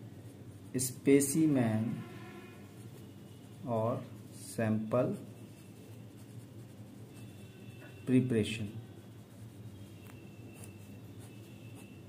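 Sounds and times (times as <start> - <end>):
pen scratching on paper: 2.8 - 12.0.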